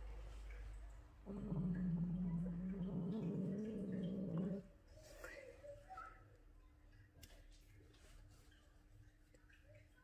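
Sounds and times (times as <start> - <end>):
cat growling low: 1.2 - 4.8.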